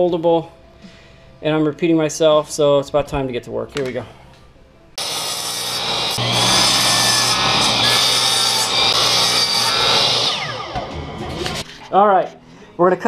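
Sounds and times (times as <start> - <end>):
saw blade spinning down whine: 5.0 - 11.6
miter saw cutting wood: 5.0 - 11.7.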